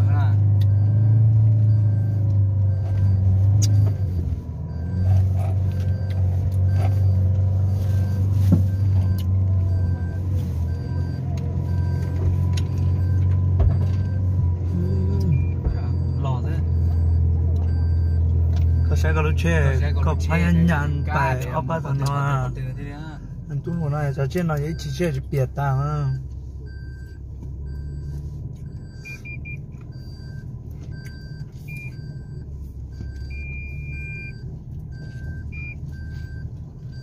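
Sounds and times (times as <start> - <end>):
car engine and tyre rumble: 0.0 - 37.0.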